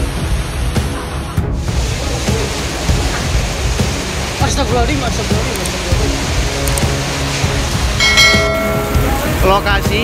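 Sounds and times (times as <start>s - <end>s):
heavy rain: 0.0s - 10.0s
notification bell chime: 8.0s - 9.2s.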